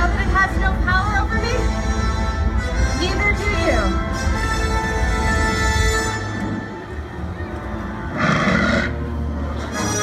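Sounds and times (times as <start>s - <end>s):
soundtrack music over loudspeakers: 0.0s - 10.0s.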